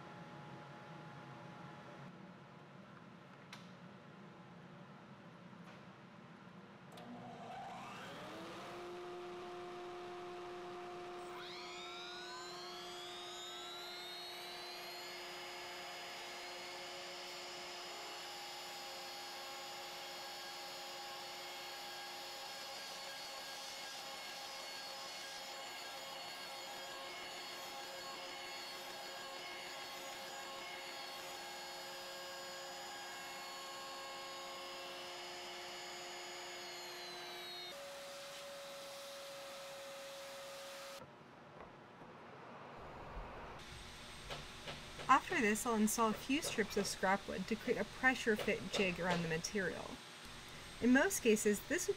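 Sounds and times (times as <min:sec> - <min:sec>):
router spindle high whine: 0:07.0 - 0:41.0, 0:43.6 - 0:51.9.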